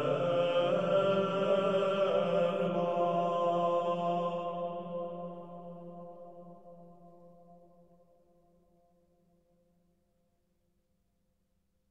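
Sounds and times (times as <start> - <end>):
vocal ensemble plainchant: 0.0 - 6.2.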